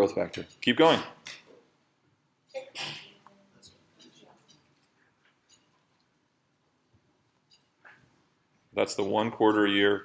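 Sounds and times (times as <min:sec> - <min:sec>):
person sneezing: 0:02.8 - 0:03.2.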